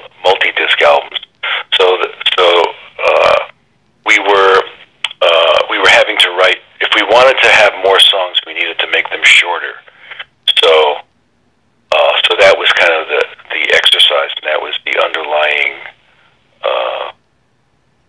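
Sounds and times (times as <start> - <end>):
man talking over telephone line: 0.0 - 11.1, 11.9 - 16.0, 16.6 - 17.2.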